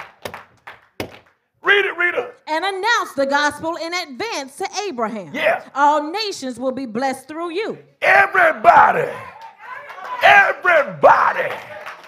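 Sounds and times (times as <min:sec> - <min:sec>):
sharp knocks: 0:00.2 - 0:01.3.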